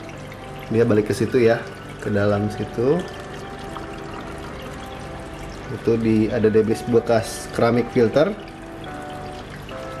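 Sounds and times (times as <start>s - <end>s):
faint background music: 0.0s - 10.0s
water pouring through aquarium filter: 0.0s - 10.0s.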